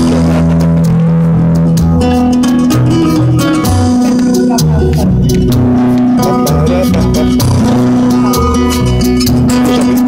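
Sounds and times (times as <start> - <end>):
acoustic guitar fingerpicking: 0.0 - 10.0.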